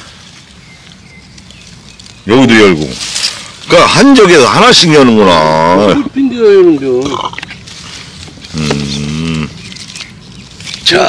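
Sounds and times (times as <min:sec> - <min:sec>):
man humming wordless sound: 0:08.5 - 0:09.6.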